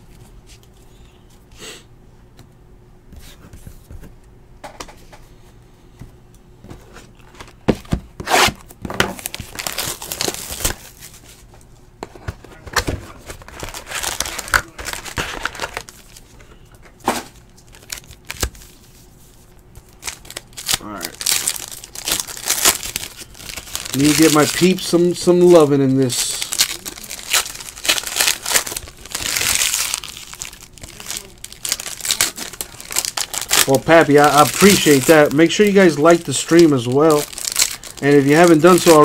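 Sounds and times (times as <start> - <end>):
foil wrappers crinkling and tearing: 8.9 - 11.4, 12.5 - 16.4, 17.2 - 19.0, 19.8 - 39.0.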